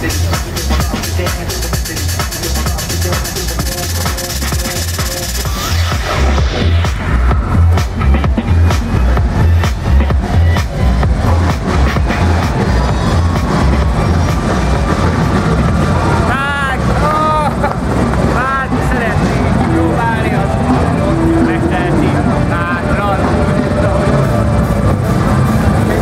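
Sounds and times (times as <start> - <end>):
loud low rumble: 0.0 - 26.0
voices: 0.0 - 26.0
high rising and falling calls: 3.8 - 17.4.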